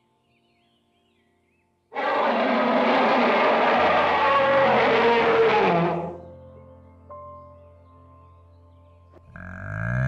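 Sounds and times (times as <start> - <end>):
elephant trumpeting: 2.0 - 6.2.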